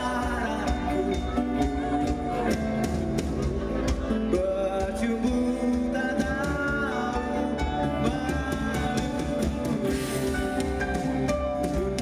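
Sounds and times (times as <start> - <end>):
bass: 0.0 - 12.0
drums: 0.0 - 12.0
electric guitars: 0.0 - 12.0.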